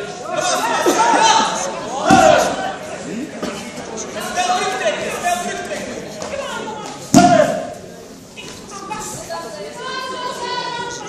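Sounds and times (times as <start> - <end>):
voices calling in echoing hall: 0.0 - 11.0
loud thump: 2.0 - 2.6.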